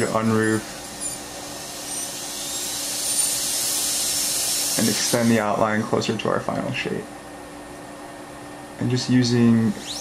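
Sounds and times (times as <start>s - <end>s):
dental drill whining: 0.0s - 5.6s, 9.5s - 10.0s.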